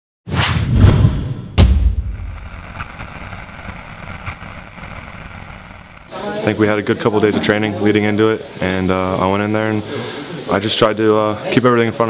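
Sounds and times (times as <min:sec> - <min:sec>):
rushing whoosh: 0:00.3 - 0:06.1
deep booming hits: 0:00.6 - 0:06.1.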